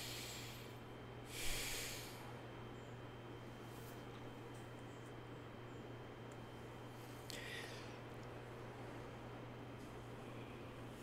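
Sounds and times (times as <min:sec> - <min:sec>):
man breathing: 0:00.0 - 0:02.3, 0:07.0 - 0:08.0.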